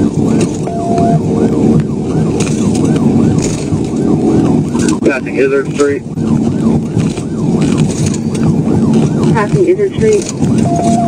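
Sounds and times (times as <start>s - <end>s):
car engine: 0.0s - 11.0s
police siren yelping: 0.0s - 11.0s
road noise: 0.0s - 11.0s.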